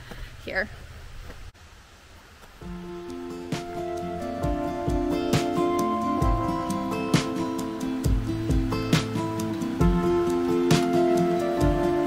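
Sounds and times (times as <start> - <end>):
faint outdoor ambience: 0.0 - 12.0
gentle background music: 2.6 - 12.0.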